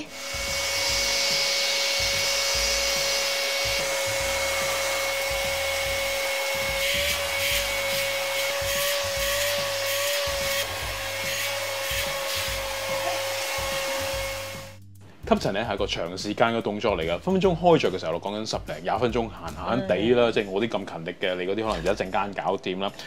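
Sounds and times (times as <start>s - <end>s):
vacuum cleaner whining: 0.0s - 14.8s.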